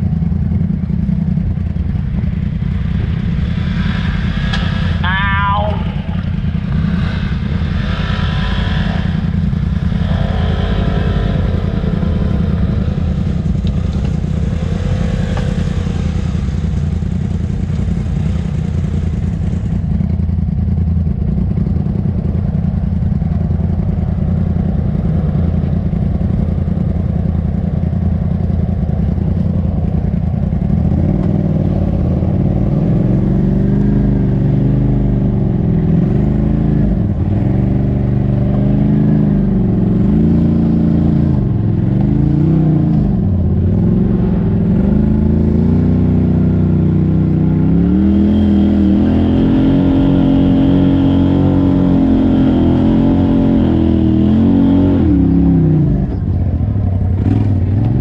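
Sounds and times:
vehicle engine idling and revving: 0:00.0 - 0:58.0.

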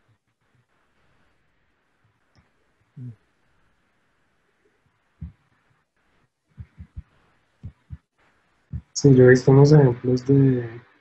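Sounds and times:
soft low thumps: 0:05.2 - 0:05.6, 0:06.5 - 0:09.1.

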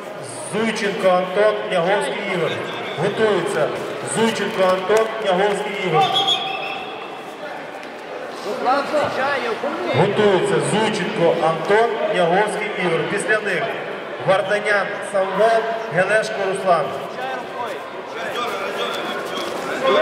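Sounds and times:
man speaking: 0:08.6 - 0:17.6.

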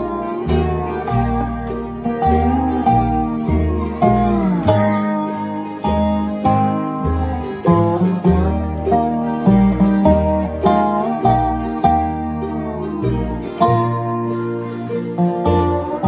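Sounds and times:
low bass line: 0:00.0 - 0:16.0
resonator guitar slide picking: 0:00.0 - 0:16.0.

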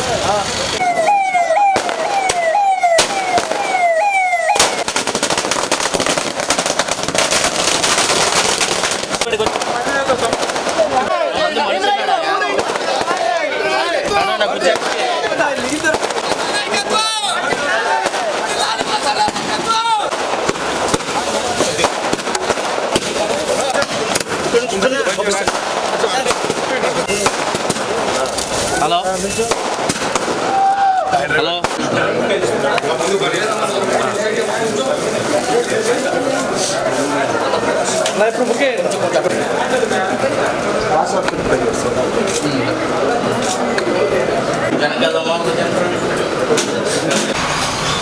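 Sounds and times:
crowd voices: 0:00.0 - 0:48.0
firecrackers crackling: 0:00.0 - 0:48.0
vehicle siren wailing: 0:00.7 - 0:05.1
sharp cracks: 0:00.7 - 0:11.1, 0:12.5 - 0:13.5, 0:14.1 - 0:32.0.

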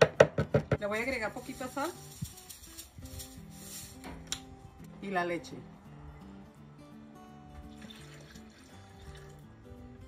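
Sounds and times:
background music with held notes: 0:00.0 - 0:10.0
milk pouring into blender jar: 0:07.8 - 0:09.4.

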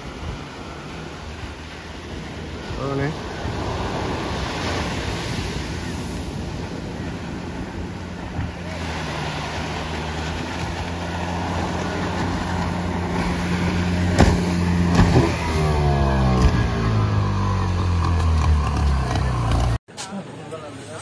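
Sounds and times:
outboard motor running: 0:05.6 - 0:19.8
sharp knocks: 0:14.1 - 0:15.4.

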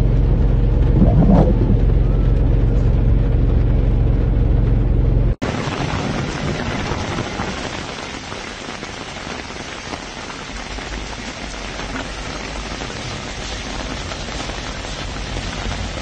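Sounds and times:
low thunder rumble: 0:00.0 - 0:04.6
heavy rain on hail-covered street: 0:05.4 - 0:16.0.

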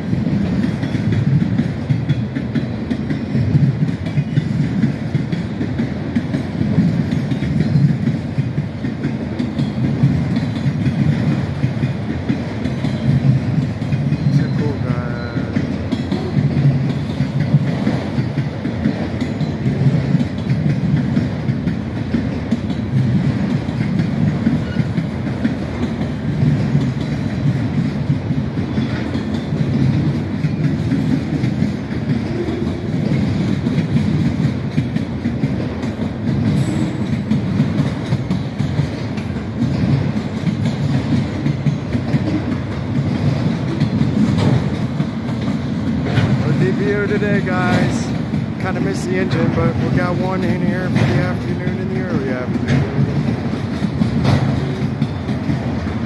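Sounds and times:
train wheels rolling on rails: 0:00.0 - 0:56.0.

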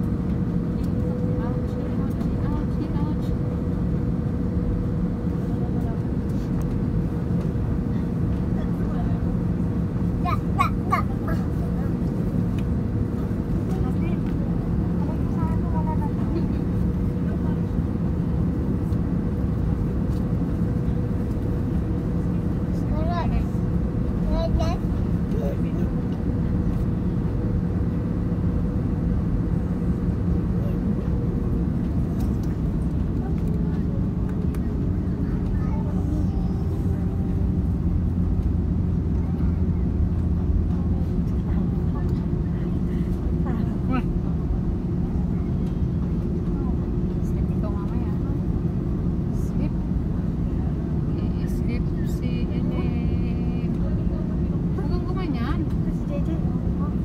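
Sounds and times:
jet engines humming: 0:00.0 - 0:57.0.

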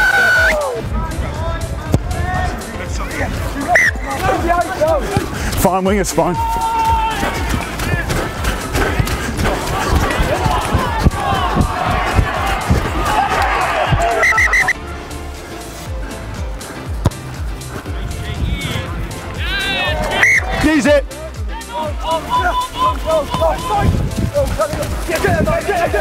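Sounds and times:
spectators shouting and cheering: 0:00.0 - 0:02.7, 0:03.7 - 0:14.8, 0:18.0 - 0:24.2.

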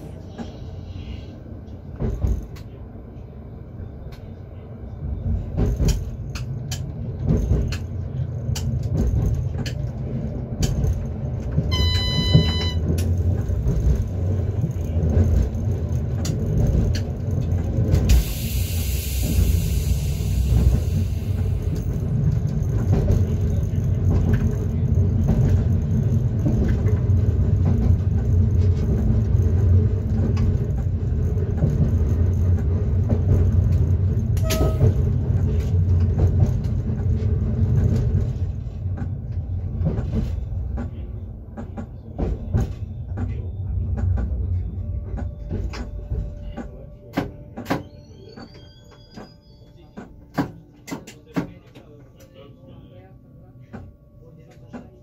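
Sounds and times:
train wheels rumbling: 0:00.0 - 0:51.9
short electronic beep: 0:11.7 - 0:12.9.

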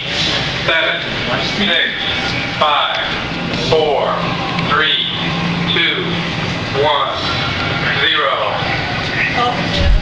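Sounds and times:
steady low hum: 0:00.0 - 0:10.0
indistinct voices: 0:00.6 - 0:10.0.

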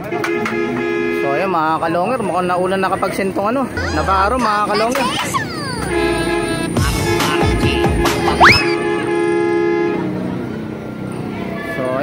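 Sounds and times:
outdoor background noise: 0:00.0 - 0:12.0
two-pitch horn tone: 0:05.8 - 0:10.0.

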